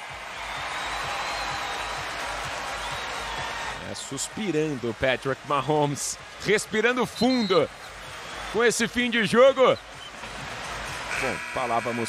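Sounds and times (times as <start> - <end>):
crowd cheering and applauding: 0.0 - 12.0.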